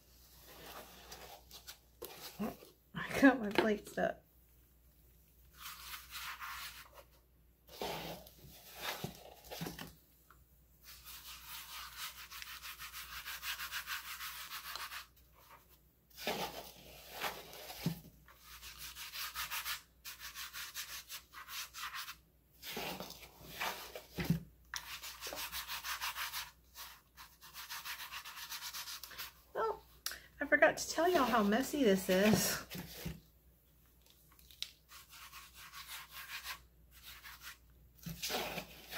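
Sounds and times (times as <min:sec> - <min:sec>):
hands rubbing gritty paste: 0:05.5 - 0:07.1, 0:10.8 - 0:15.6, 0:24.8 - 0:29.4, 0:34.4 - 0:38.9.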